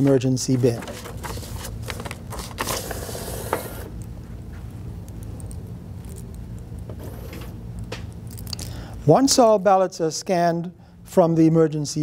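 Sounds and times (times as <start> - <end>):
scanner low steady hum: 0.0 - 12.0
paper feed rush: 0.6 - 3.9.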